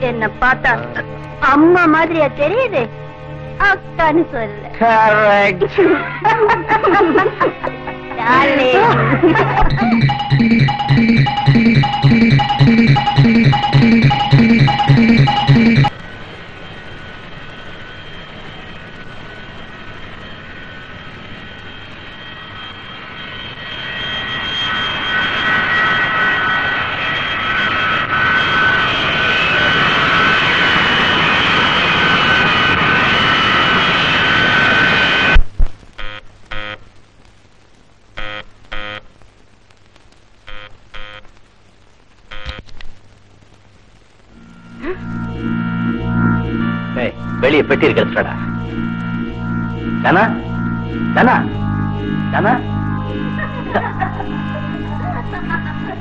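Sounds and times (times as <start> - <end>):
jet engines whining: 9.6 - 35.4, 44.4 - 56.0.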